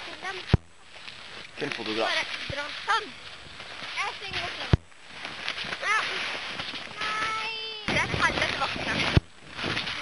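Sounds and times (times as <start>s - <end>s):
child speaking: 0.0s - 0.6s, 2.0s - 3.2s, 3.9s - 4.8s, 5.8s - 9.2s
branches breaking: 0.0s - 10.0s
rustling pine branches: 0.0s - 10.0s
snow being trampled: 0.0s - 10.0s.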